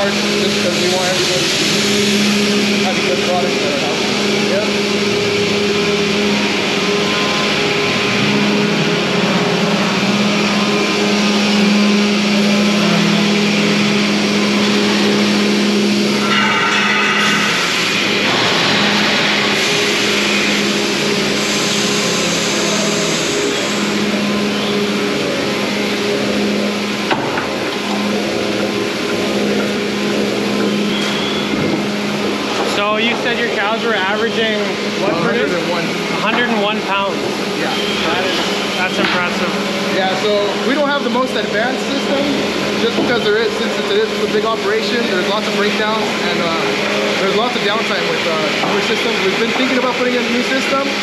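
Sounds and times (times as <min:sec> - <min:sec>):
milking machinery humming: 0:00.0 - 0:51.0.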